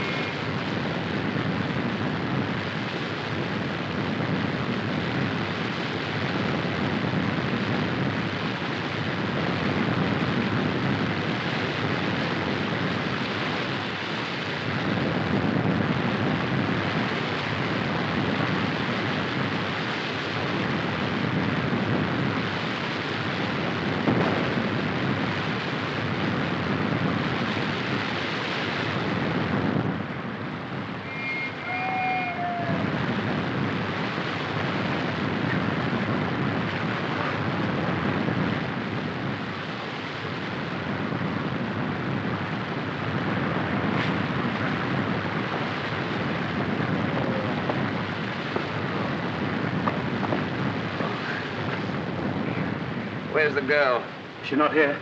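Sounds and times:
waterfall rushing: 30.3s - 35.3s
high whistle-like call: 31.0s - 32.9s.

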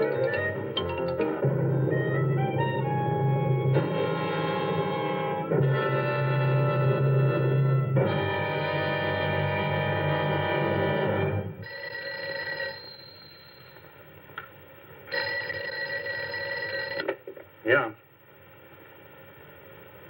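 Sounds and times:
telephone bell ringing: 11.6s - 14.0s, 15.1s - 17.1s.

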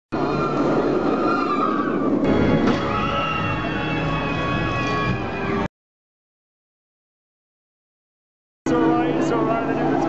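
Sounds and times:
intro music with sustained tones: 2.2s - 5.7s.

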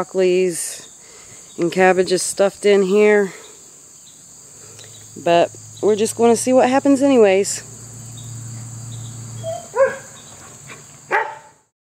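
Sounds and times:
high drone of insects: 0.0s - 11.7s
dog yip: 9.4s - 11.6s.

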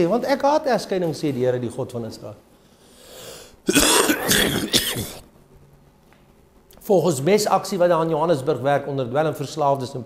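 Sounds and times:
breath in: 2.6s - 3.6s
man coughing: 3.7s - 5.2s.

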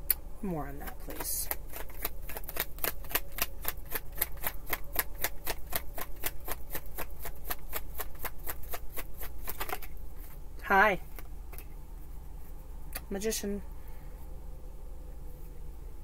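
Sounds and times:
cards being shuffled: 0.8s - 10.4s.

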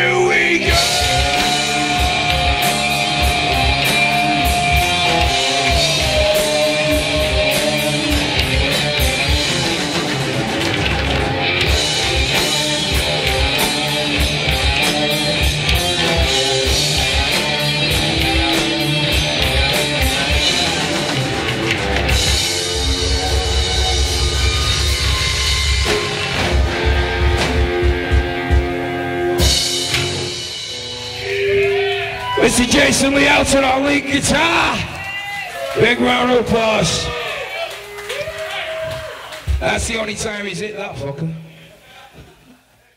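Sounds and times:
electric guitars: 0.0s - 40.3s
drum kit: 0.0s - 40.4s.

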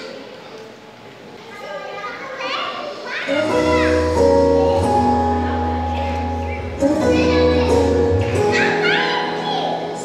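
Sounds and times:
music with held notes and bass: 3.3s - 10.0s
small children calling out: 7.0s - 10.0s.

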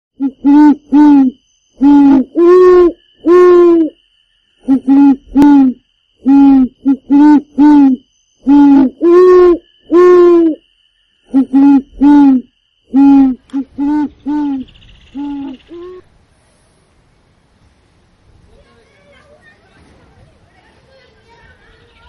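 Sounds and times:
loud owl hoots: 0.2s - 4.0s, 4.6s - 16.1s.

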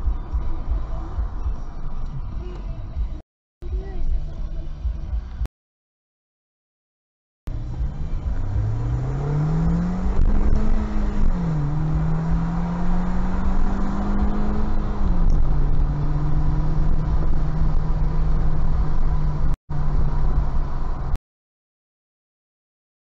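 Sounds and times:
low road rumble: 0.0s - 5.5s, 7.5s - 21.2s
car engine accelerating: 7.5s - 21.2s.

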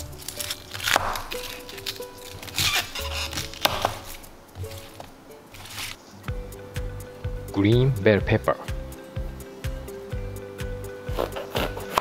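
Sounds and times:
background music with steady beat: 0.0s - 12.0s
knife slicing pepper on board: 11.1s - 12.0s.

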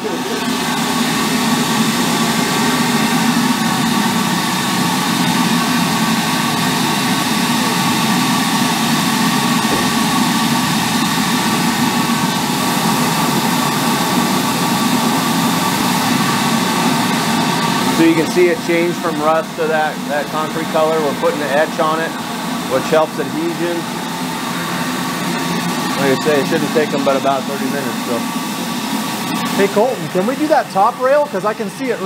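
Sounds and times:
steady hum: 0.0s - 32.0s.

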